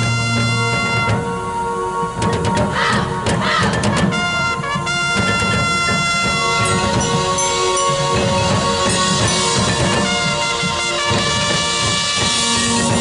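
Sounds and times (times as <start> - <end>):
brass sustained chords: 0.0 - 13.0
percussion hits and crashes: 2.2 - 13.0.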